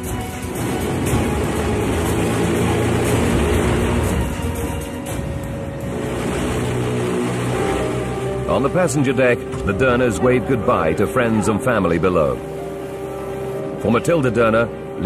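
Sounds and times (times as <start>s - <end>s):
background music: 0.0s - 15.0s
propeller engines droning: 0.0s - 15.0s.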